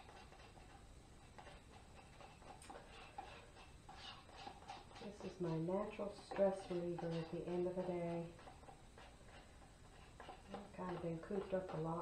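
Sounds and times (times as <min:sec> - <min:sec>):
faint irregular ticks: 0:00.0 - 0:12.0.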